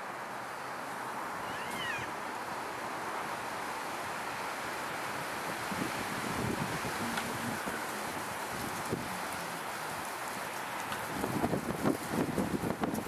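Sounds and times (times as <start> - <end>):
wind hiss: 0.0 - 13.0
elk high call: 1.4 - 2.2.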